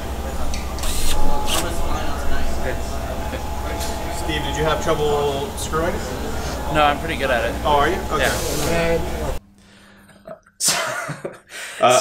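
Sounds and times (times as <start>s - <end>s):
faint voices: 0.0s - 9.4s
factory machinery hum: 0.0s - 9.7s
pneumatic air hiss: 0.8s - 1.7s, 8.2s - 8.8s.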